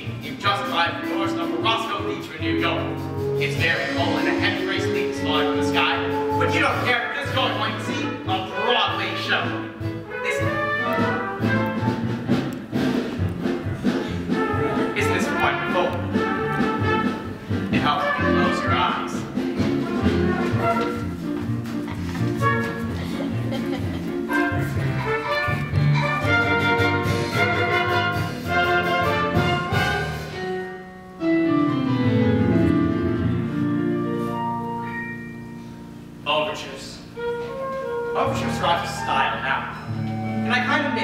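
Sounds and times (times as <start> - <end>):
orchestra playing lively jazz: 0.0 - 41.0.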